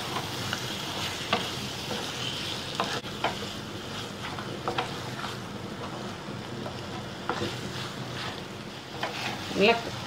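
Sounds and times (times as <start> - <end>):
frying sizzle: 0.0 - 10.0
spatula stirring food: 0.0 - 10.0.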